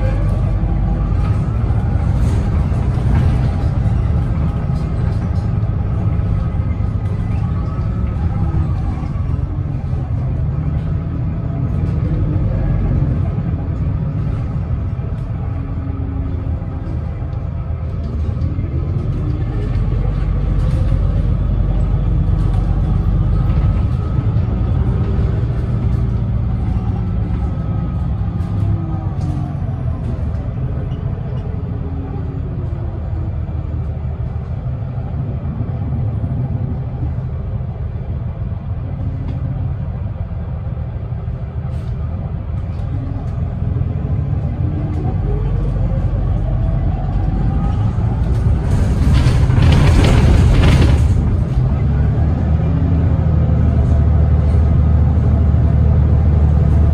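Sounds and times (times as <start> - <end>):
bus drivetrain rumble: 0.0 - 56.9.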